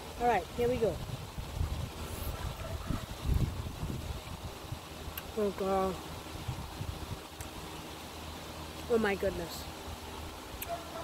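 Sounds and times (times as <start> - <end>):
wind buffeting microphone: 0.4 - 5.1, 6.3 - 7.3.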